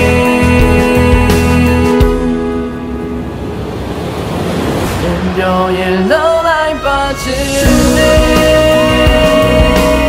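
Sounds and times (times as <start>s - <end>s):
person singing: 0.0s - 2.8s, 5.0s - 10.0s
rising noise swell: 1.9s - 8.0s.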